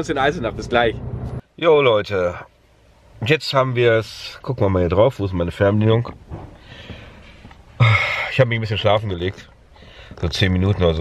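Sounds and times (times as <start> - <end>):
man talking: 0.0 - 1.0, 1.6 - 2.5, 3.2 - 6.2, 7.8 - 9.5, 10.2 - 11.0.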